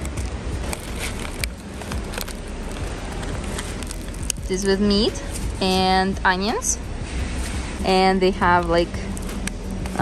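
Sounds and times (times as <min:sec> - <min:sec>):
street noise with low rumble: 0:00.0 - 0:10.0.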